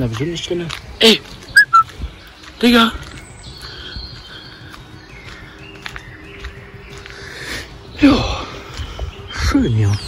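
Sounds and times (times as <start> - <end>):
faint birdsong: 0.0 - 10.0
footsteps on a path: 0.0 - 10.0.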